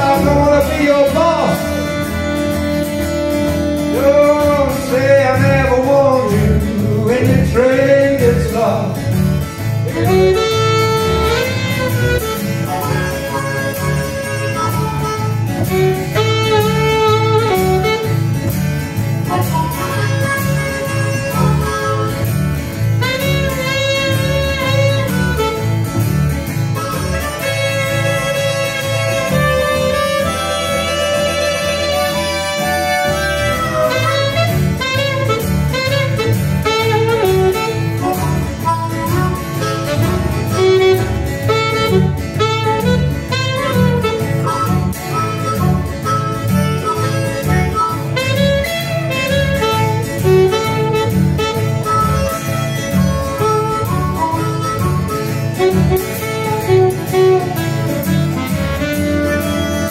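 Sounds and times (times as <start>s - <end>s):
acoustic guitar: 0.0s - 59.9s
harmonica: 0.0s - 59.9s
plucked double bass: 0.0s - 59.9s
saxophone: 0.0s - 59.9s.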